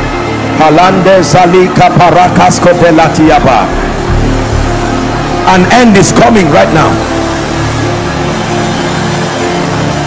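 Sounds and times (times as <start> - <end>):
held notes of background music: 0.0 - 10.0.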